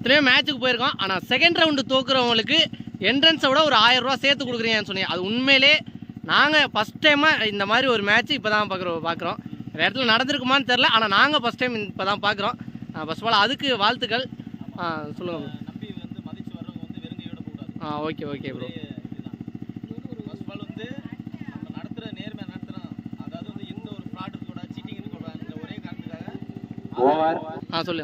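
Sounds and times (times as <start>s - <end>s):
men talking: 0.0s - 21.0s, 21.7s - 28.0s
small engine idling: 0.0s - 28.0s.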